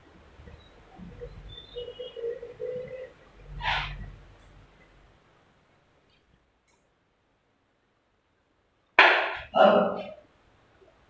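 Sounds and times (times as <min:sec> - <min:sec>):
duster squeaking on whiteboard: 0:03.5 - 0:04.1.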